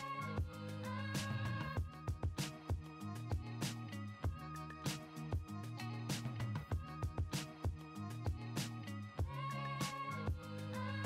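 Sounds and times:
bass line: 0:00.0 - 0:11.0.

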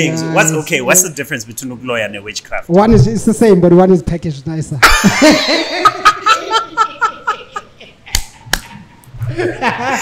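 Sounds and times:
man laughing: 0:04.8 - 0:10.0
hand claps: 0:08.1 - 0:08.8.

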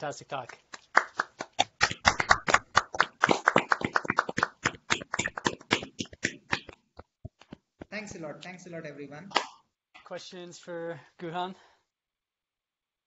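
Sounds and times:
people clapping: 0:00.3 - 0:06.9.

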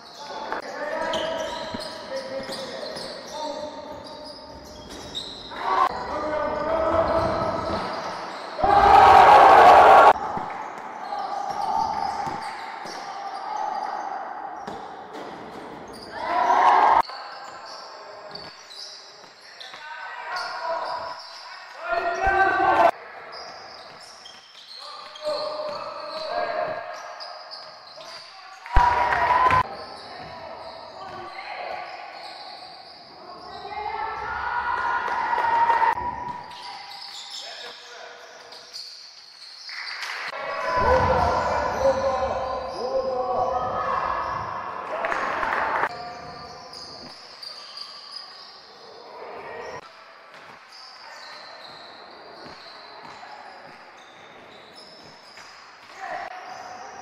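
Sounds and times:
players shouting: 0:08.6 - 0:10.4, 0:40.4 - 0:45.9.

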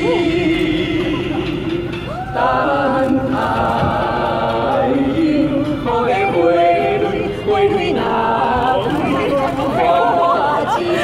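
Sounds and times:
man and women singing together: 0:00.0 - 0:11.0.

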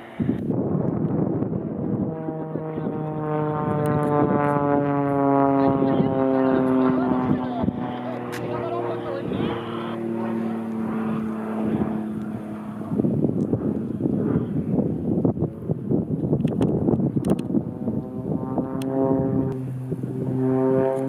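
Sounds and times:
plane engine and propeller droning: 0:00.0 - 0:21.0.

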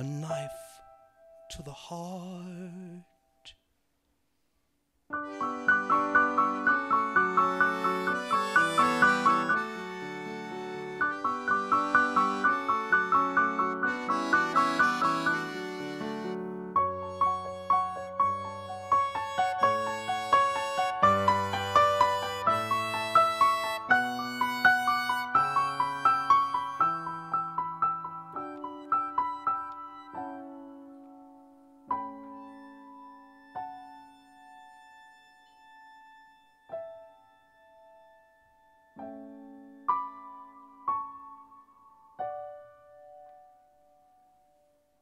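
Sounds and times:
electric keyboard: 0:05.1 - 0:44.8
accordion: 0:05.2 - 0:30.9, 0:31.9 - 0:39.0
soft piano chords: 0:05.2 - 0:45.0.

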